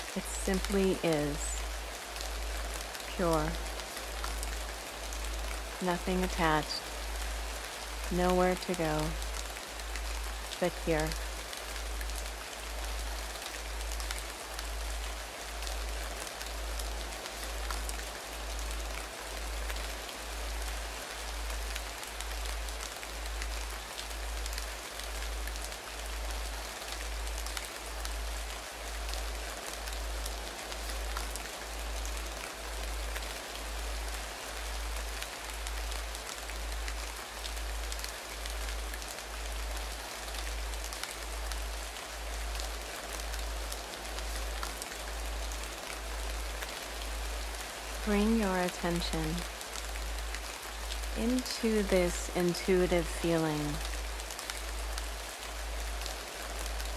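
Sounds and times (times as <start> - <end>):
steady rain falling: 0.0 - 56.9.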